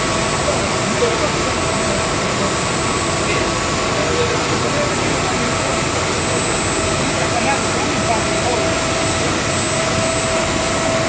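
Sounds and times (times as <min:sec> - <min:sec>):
thin high whine: 0:00.0 - 0:11.0.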